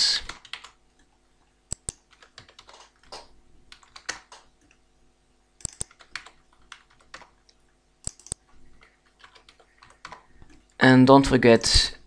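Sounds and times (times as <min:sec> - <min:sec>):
typing on computer keyboard: 0:00.3 - 0:00.8, 0:01.7 - 0:04.8, 0:05.6 - 0:10.6
sharp clicks: 0:01.7 - 0:04.8, 0:05.6 - 0:10.6.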